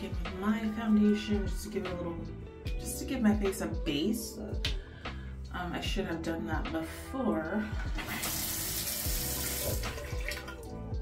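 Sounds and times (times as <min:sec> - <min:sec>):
water running from sink tap: 0:07.7 - 0:10.8.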